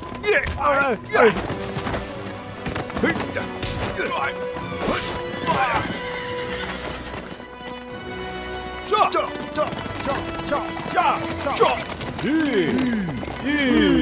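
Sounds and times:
dramatic background music: 0:00.0 - 0:14.0
galloping hoofbeats: 0:01.2 - 0:04.7, 0:05.4 - 0:14.0
horses neighing: 0:08.9 - 0:14.0.

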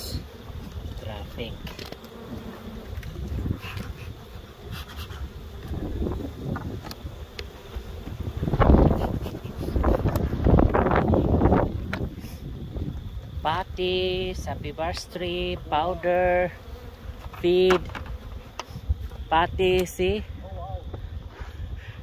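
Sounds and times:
honey bees buzzing: 0:00.0 - 0:22.0.

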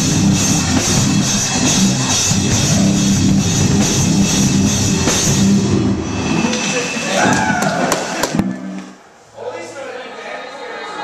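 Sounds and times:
heavy rock band playing: 0:00.0 - 0:08.8
sharp drum or cymbal hits: 0:00.0 - 0:08.8.

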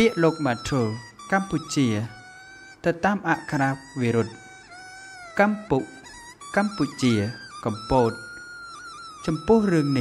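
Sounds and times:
man narrating: 0:00.0 - 0:04.5, 0:05.3 - 0:08.4, 0:09.2 - 0:10.0
soft flute-like background music: 0:00.0 - 0:10.0.

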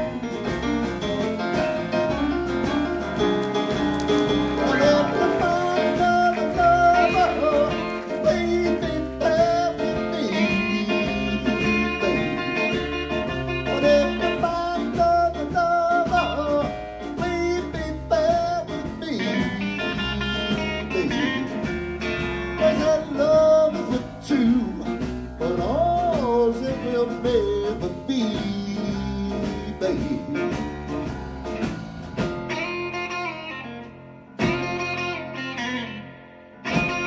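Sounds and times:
blues band playing: 0:00.0 - 0:37.0.

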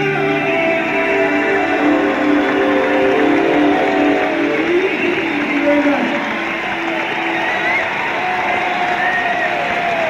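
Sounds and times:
rock band chord ringing out: 0:00.2 - 0:06.4.

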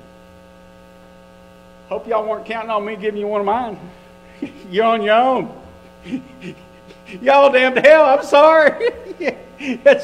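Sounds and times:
electrical mains hum: 0:00.0 - 0:10.0
man speaking: 0:01.9 - 0:10.0.

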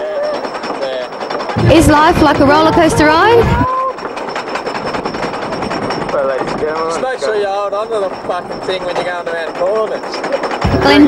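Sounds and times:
roller coaster chain lift clacking: 0:00.0 - 0:11.0.

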